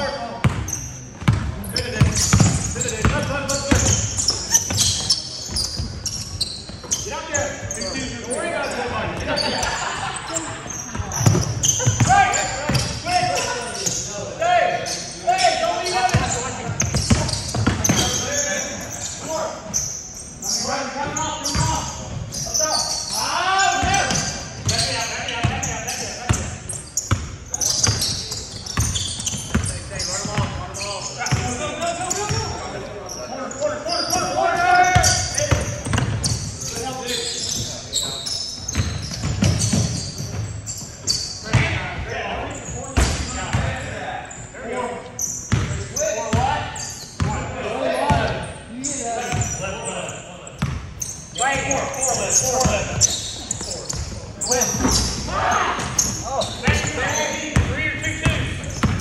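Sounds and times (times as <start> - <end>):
basketball bouncing on hardwood floor: 1.2 - 3.9, 45.5 - 45.7, 58.3 - 59.0.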